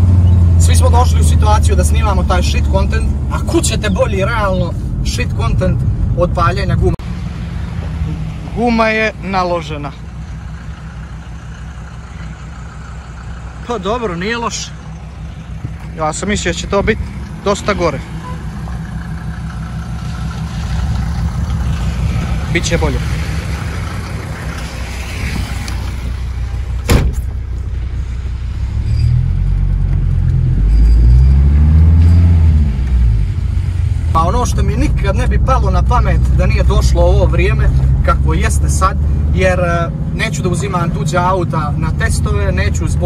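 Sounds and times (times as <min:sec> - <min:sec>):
car engine running steadily: 0:00.0 - 0:30.9, 0:31.8 - 0:43.0
car door shutting: 0:26.7 - 0:27.4.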